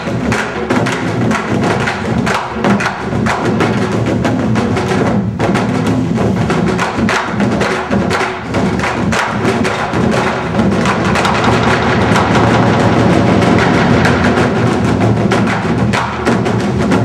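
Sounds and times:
barrel drums struck with sticks: 0.0s - 17.0s.

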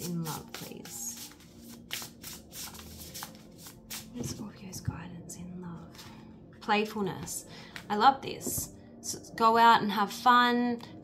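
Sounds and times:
cards being shuffled: 0.0s - 4.4s.

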